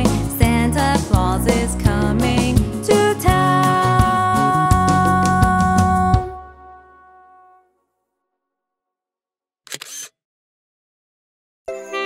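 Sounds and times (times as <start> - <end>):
camera shutter snap: 9.7 - 10.2.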